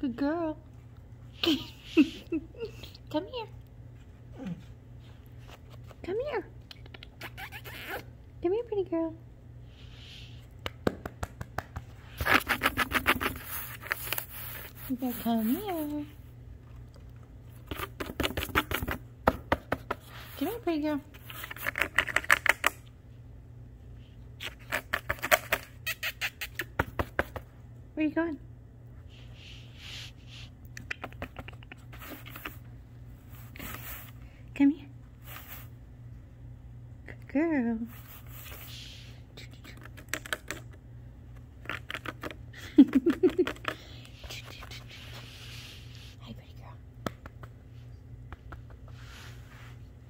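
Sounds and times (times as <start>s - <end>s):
low steady hum: 0.0s - 50.0s
person whispering: 38.8s - 40.0s, 44.1s - 45.2s, 46.0s - 46.9s.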